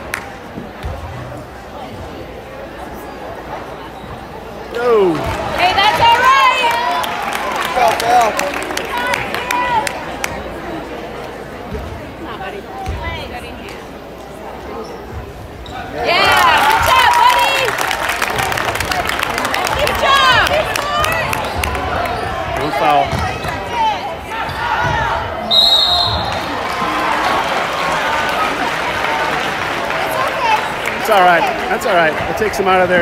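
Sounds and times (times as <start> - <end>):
crowd voices: 0.0 - 33.0
basketball bouncing on court: 23.0 - 23.6
referee whistle: 25.4 - 26.5.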